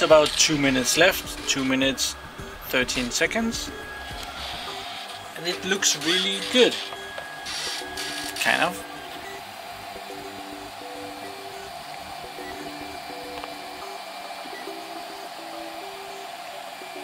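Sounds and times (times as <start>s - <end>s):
cooling fans whirring: 0.0s - 17.0s
stepper motors whining: 0.0s - 17.0s.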